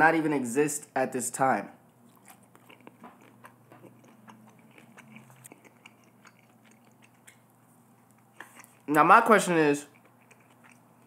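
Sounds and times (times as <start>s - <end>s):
chewing food: 1.8s - 11.0s.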